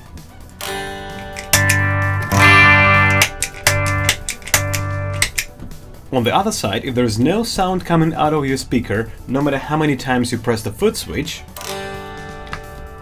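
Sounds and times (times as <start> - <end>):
electric guitar chords: 0.6 - 6.1, 11.6 - 13.0.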